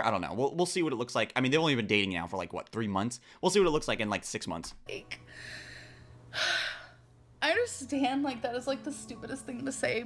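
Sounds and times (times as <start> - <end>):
woman breathing while crying: 5.2 - 7.1
gasping inhale: 5.3 - 7.0.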